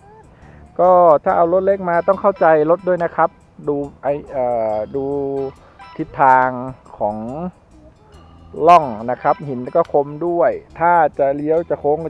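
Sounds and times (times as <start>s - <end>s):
faint background music: 0.0s - 12.0s
man speaking: 0.8s - 7.6s, 8.6s - 12.0s.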